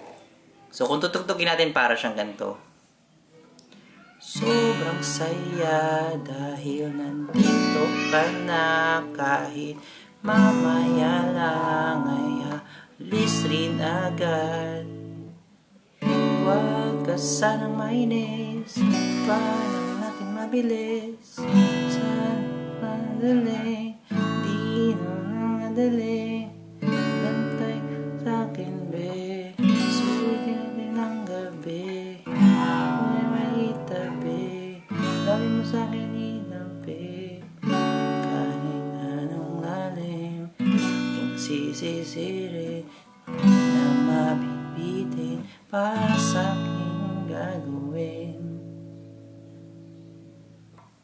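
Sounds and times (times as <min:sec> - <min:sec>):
acoustic guitar chords strummed: 0:04.3 - 0:15.4, 0:16.0 - 0:50.9.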